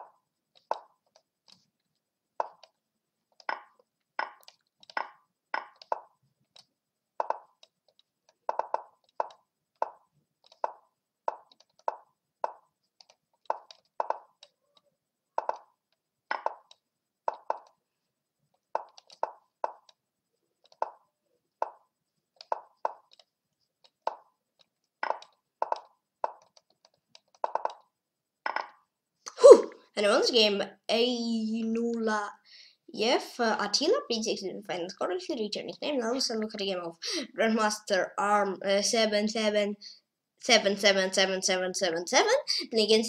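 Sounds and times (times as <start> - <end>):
wooden clicks of chess pieces: 2.4 - 14.8, 15.4 - 17.8, 18.6 - 20.0, 20.6 - 27.9.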